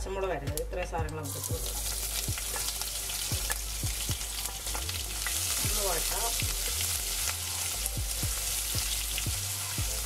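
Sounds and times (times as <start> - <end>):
food sizzling in hot oil: 1.2 - 10.0.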